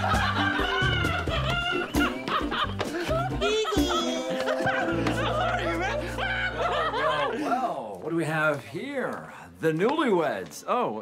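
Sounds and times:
background music with bass line: 0:00.0 - 0:07.3
person laughing: 0:00.0 - 0:07.7.

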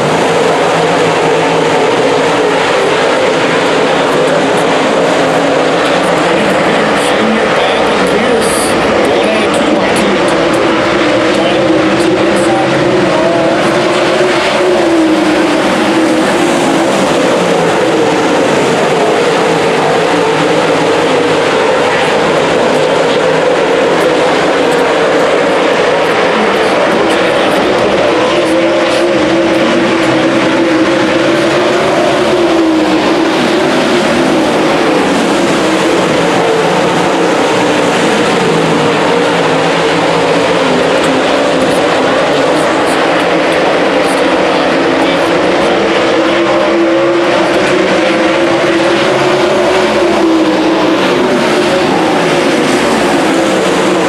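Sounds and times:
race car engines roaring: 0:00.0 - 0:54.0.

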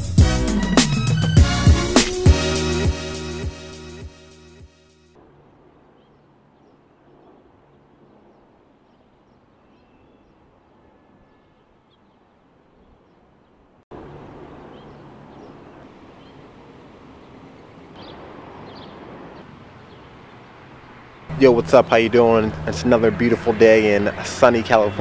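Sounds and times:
distant city traffic hum: 0:00.0 - 0:25.0
bird chirps: 0:05.9 - 0:13.3, 0:14.6 - 0:16.5, 0:17.2 - 0:22.8.

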